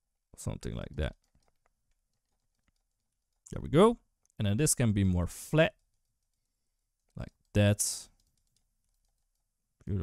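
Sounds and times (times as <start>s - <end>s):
keyboard and mouse clicks: 0.9s - 3.6s, 5.7s - 9.9s
person speaking: 7.1s - 8.3s.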